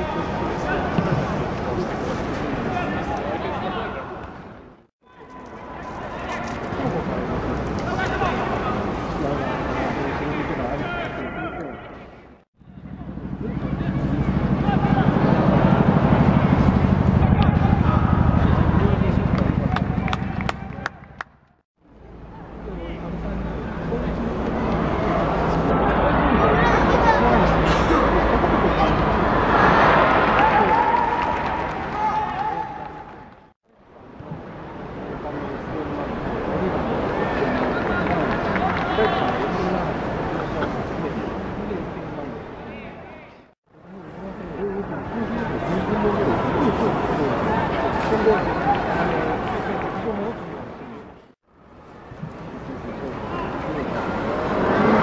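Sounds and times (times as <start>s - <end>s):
stadium crowd voices: 0.0s - 51.3s, 52.0s - 55.0s
rhythmic pulsing crowd sound: 12.8s - 21.2s
players shouting: 24.8s - 33.2s
crowd murmur: 43.8s - 51.2s, 52.2s - 55.0s.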